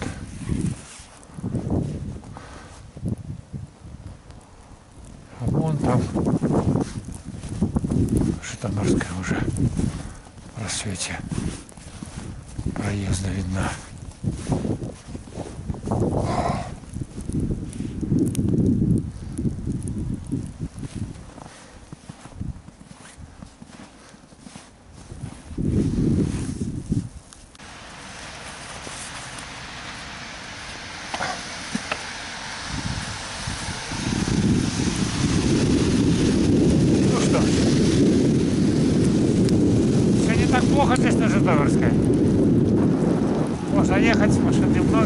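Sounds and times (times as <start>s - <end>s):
bicycle tyres on slushy road: 0.0s - 45.0s
wind on microphone: 0.0s - 45.0s.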